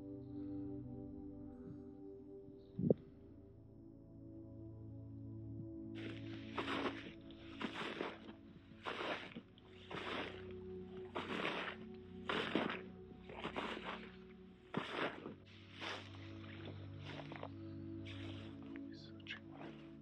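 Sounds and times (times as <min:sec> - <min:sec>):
soft ambient music: 0:00.0 - 0:20.0
footsteps crunching on frozen grass: 0:06.0 - 0:20.0.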